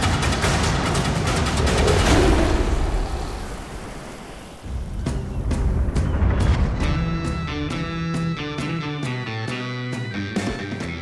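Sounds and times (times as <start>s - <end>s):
rushing surf-like noise: 1.0s - 5.6s.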